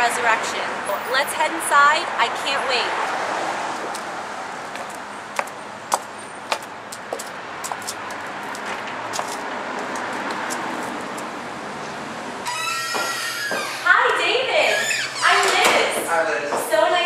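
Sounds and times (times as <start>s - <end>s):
city street traffic: 0.0s - 17.0s
footsteps on stone steps: 3.8s - 11.5s, 12.9s - 13.7s
sharp taps: 4.7s - 11.3s.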